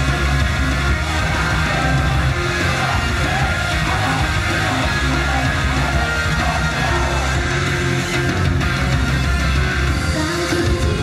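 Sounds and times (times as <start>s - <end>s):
crowd yelling: 0.0s - 10.0s
live heavy rock music: 0.0s - 11.0s.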